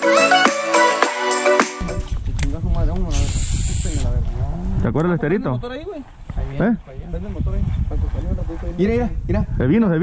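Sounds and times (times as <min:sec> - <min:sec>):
steady hiss: 0:03.1 - 0:04.1.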